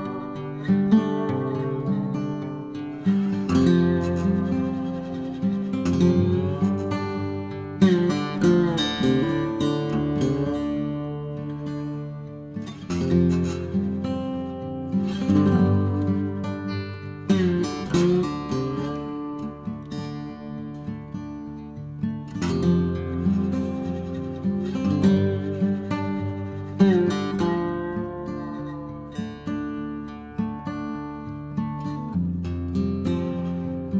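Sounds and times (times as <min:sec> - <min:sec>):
acoustic guitar playing: 0:00.0 - 0:33.9.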